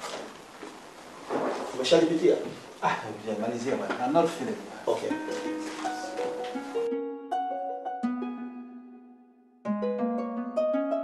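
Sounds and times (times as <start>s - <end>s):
papers rustling: 4.9s - 6.8s.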